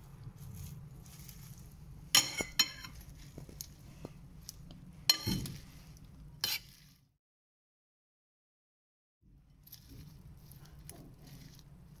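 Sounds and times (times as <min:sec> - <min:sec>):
salad leaves rustling: 0:00.0 - 0:04.7, 0:05.3 - 0:07.1, 0:09.6 - 0:12.0
metal spoon clinking on bowl: 0:02.1 - 0:03.0.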